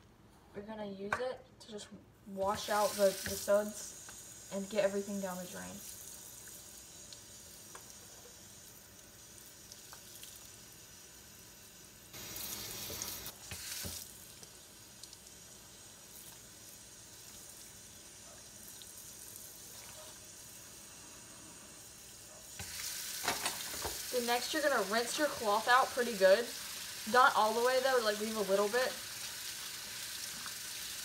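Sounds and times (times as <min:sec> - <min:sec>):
sink sprayer water hissing: 0:02.4 - 0:31.0.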